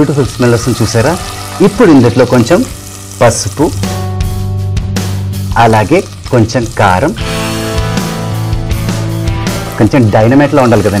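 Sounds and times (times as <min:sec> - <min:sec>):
person speaking: 0:00.0 - 0:03.8, 0:09.7 - 0:11.0
sizzling in hot oil: 0:00.0 - 0:11.0.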